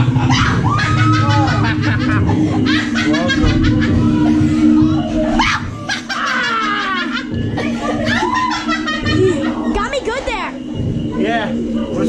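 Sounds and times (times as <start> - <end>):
group laughing: 0.0 - 10.0
excited voices: 0.0 - 12.0
low droning tone: 0.0 - 12.0.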